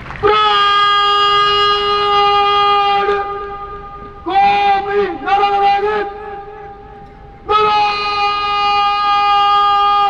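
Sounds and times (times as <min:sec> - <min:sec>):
long parade-ground call: 0:00.0 - 0:10.0.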